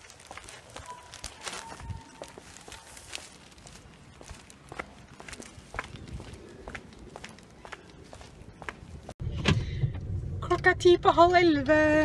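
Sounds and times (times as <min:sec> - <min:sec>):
footsteps on wet asphalt: 0:00.0 - 0:09.2.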